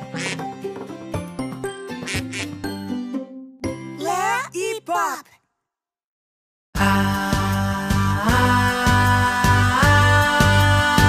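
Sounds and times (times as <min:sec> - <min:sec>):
quacking squawks: 0:00.0 - 0:00.5, 0:02.0 - 0:02.6
cheerful cartoon jingle: 0:01.2 - 0:04.8.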